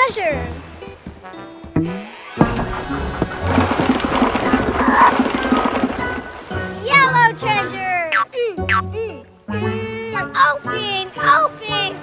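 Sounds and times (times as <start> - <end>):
background music: 0.0 - 12.0
wooden barrel rolling and rattling: 1.0 - 7.0.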